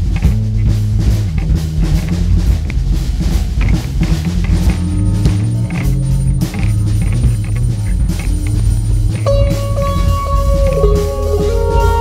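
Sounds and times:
recorded drum track: 0.0s - 12.0s
electric guitar low held notes: 9.2s - 12.0s.

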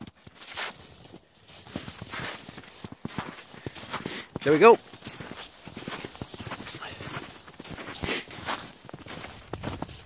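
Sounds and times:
footsteps crunching through snow: 0.0s - 10.0s.

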